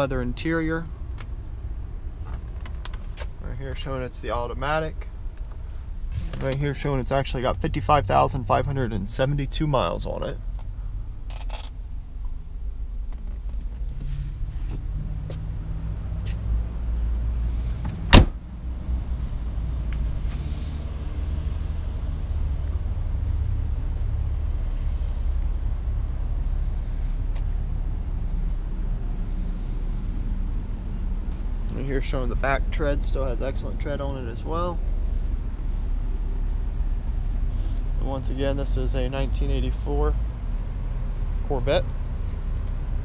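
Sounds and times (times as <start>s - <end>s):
steady low rumble: 0.0s - 43.0s
car door slam: 17.8s - 18.4s.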